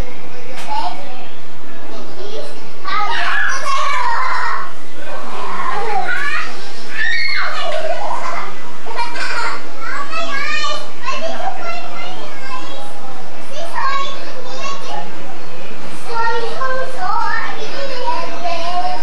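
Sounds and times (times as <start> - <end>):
children talking and calling out: 0.6 - 19.0.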